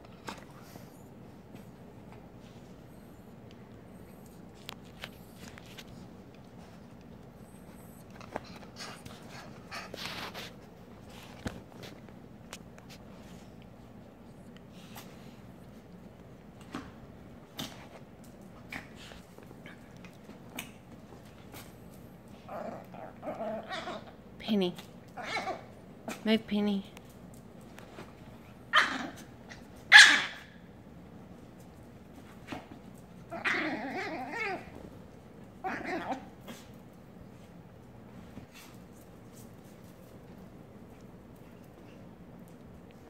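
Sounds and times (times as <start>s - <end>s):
dogs scuffling in play: 3.8s - 22.9s, 31.2s - 43.0s
small dog barking: 29.9s - 30.6s.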